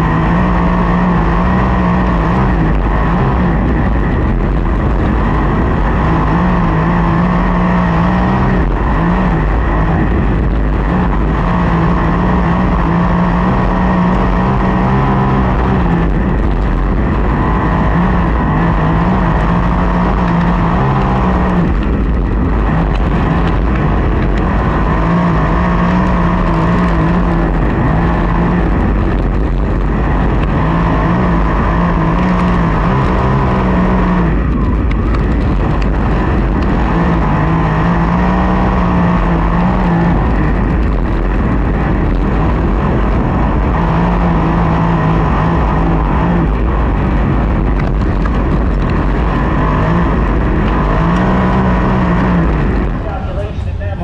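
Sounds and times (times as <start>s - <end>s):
race car engine revving: 0.0s - 54.0s
track noise: 0.0s - 54.0s
wind noise: 0.0s - 54.0s.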